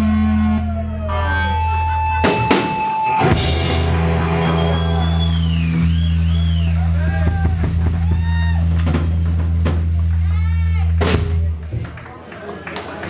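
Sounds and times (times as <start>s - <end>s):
live rock band: 0.0s - 11.8s.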